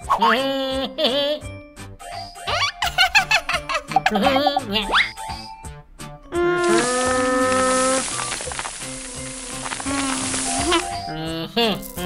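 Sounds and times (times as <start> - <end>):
powder pouring hiss: 6.6 - 11.0.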